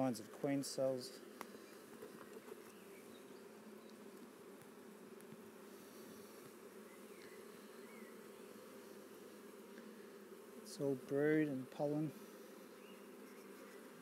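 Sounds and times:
honey bees buzzing: 0.0 - 14.0.

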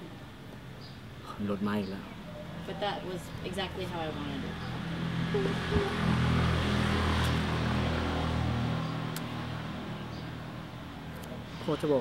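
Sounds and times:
road noise: 0.0 - 12.0
passing vehicle engine hum: 2.1 - 12.0.

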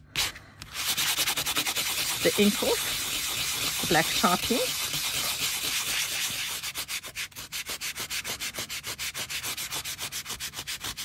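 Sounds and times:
buffer scrubbing metal tape: 0.2 - 11.0.

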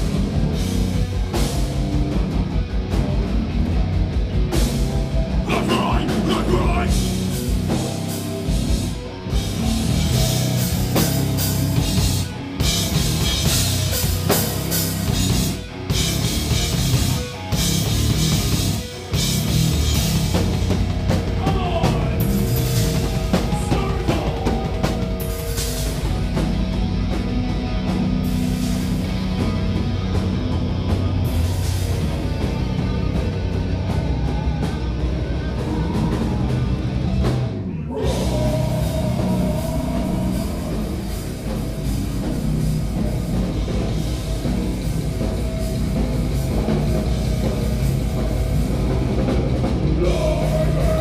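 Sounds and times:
heavy metal band playing live: 0.0 - 51.0.

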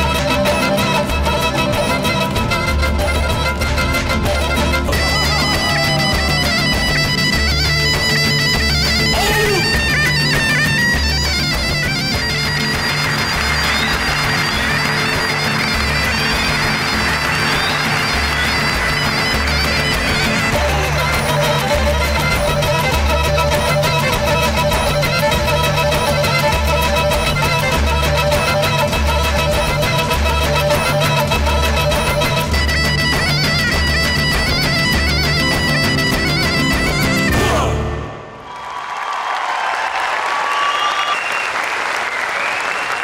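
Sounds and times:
bagpipe melody: 0.0 - 38.4
crowd noise: 0.0 - 43.0.

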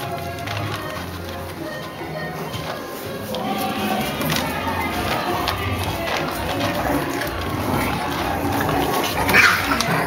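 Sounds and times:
puppy high cry: 9.0 - 10.0.

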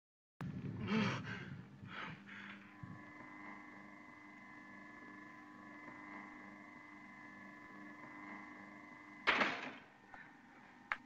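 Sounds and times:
faint hum of held tones: 0.4 - 11.0.

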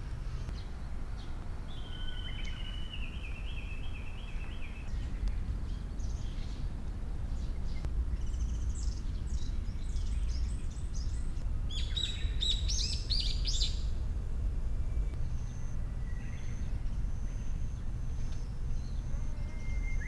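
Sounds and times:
small birds chirping: 0.0 - 14.1, 14.8 - 20.0
low background rumble: 0.0 - 20.0.

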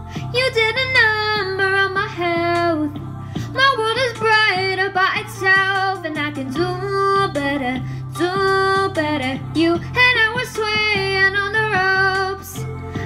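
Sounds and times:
woman singing pop song: 0.0 - 13.0.

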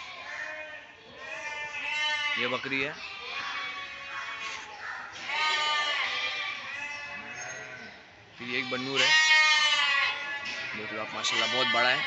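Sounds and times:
goats bleating: 0.0 - 12.0.

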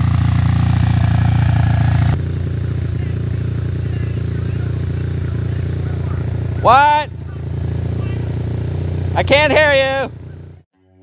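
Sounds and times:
engine droning steadily: 0.0 - 11.0.

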